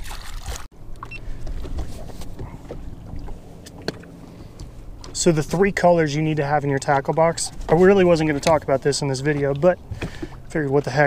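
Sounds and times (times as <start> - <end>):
water against boat: 0.0 - 11.0
low rumble of wind: 0.8 - 11.0.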